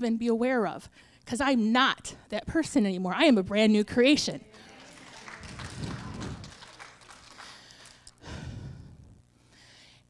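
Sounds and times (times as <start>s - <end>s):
woman speaking: 0.0s - 6.6s
woman breathing: 7.3s - 10.0s.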